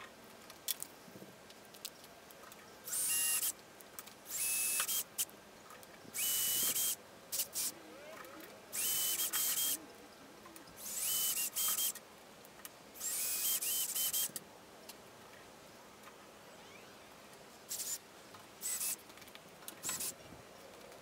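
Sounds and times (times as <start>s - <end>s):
cordless drill motor whine: 2.9s - 3.6s, 4.3s - 5.1s, 6.2s - 7.7s, 8.8s - 9.8s, 10.8s - 12.0s, 13.0s - 14.3s, 18.6s - 19.0s, 19.8s - 20.2s.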